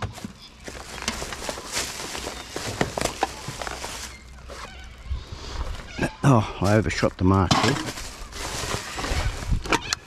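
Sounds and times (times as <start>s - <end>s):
plastic bin bag rustling: 0.0s - 4.7s, 6.6s - 10.0s
cans and bottles clinking: 7.4s - 9.9s.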